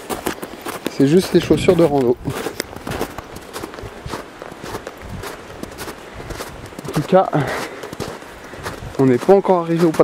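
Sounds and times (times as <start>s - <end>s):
footsteps in snow: 0.0s - 10.0s.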